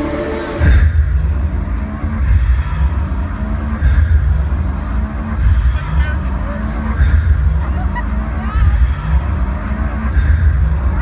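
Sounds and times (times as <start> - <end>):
live concert music: 0.0 - 11.0
heavy bass kicks: 0.4 - 11.0.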